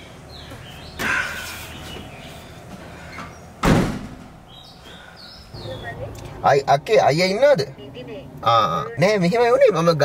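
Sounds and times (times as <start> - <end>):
car door slamming: 3.6 - 4.4.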